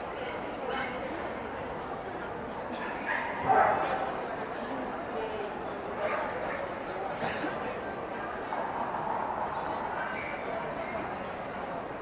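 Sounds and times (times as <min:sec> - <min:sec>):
crowd babble indoors: 0:00.0 - 0:12.0.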